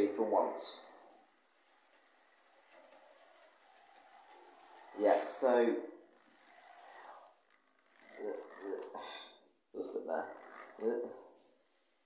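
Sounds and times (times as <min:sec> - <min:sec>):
model train motor and wheels: 0:00.0 - 0:09.0.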